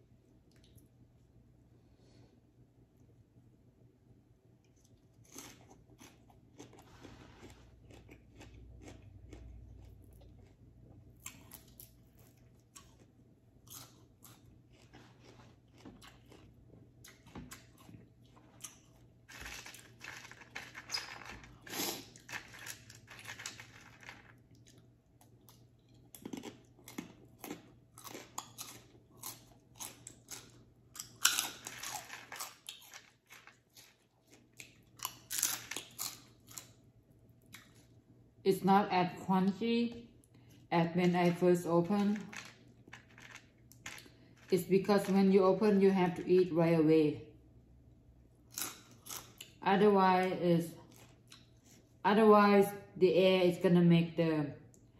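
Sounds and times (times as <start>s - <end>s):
person chewing and crunching food: 4.6s - 38.0s, 42.0s - 45.2s, 48.4s - 49.6s, 50.8s - 52.0s.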